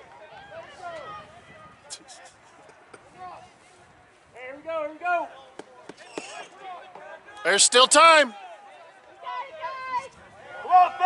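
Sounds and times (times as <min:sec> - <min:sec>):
short shouts: 0:07.4 - 0:08.4.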